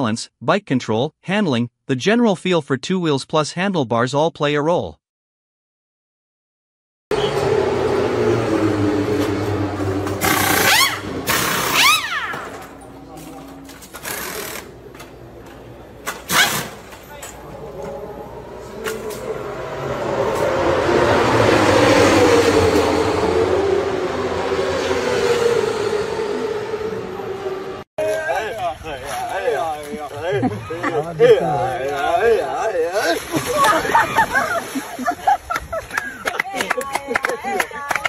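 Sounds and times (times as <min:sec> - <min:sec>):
racing motorcycle engines passing: 0:07.1 - 0:27.8.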